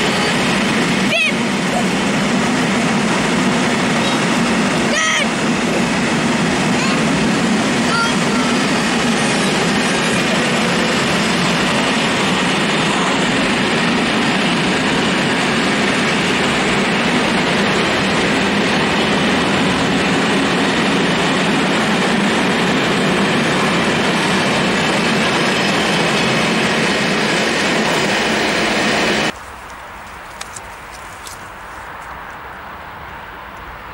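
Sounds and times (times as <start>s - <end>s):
train wheels rumbling on rails: 0.0s - 33.9s.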